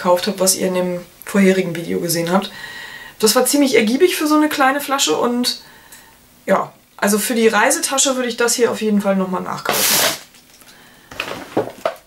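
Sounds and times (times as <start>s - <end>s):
short breathy hiss: 9.7s - 11.1s
plastic containers clicking and rustling: 10.1s - 12.0s.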